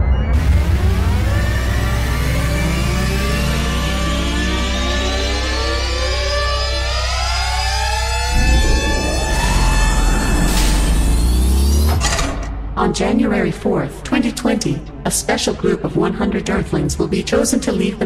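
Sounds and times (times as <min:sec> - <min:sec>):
deep rumble: 0:08.2 - 0:17.1
rushing noise: 0:08.3 - 0:12.2.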